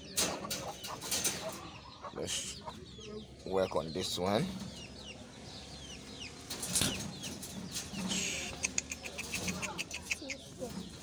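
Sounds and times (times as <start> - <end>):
chickens clucking: 0.0 - 11.0.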